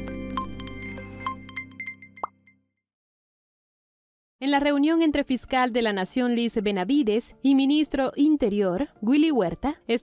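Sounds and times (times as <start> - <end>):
electronic logo jingle: 0.0 - 2.5.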